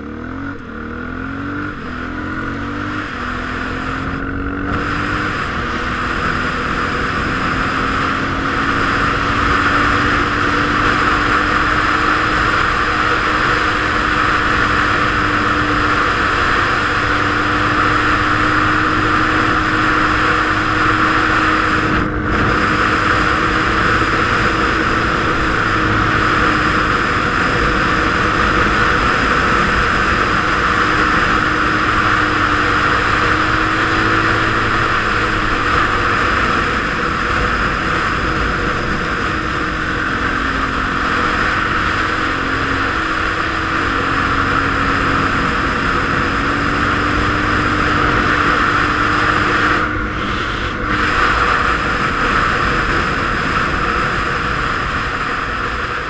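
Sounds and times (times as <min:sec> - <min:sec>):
loud wind rush: 0:00.0 - 0:56.0
motorcycle engine cruising: 0:00.0 - 0:56.0.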